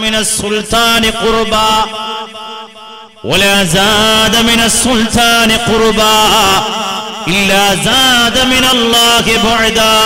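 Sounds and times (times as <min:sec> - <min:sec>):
man chanting melodic recitation: 0:00.0 - 0:10.0.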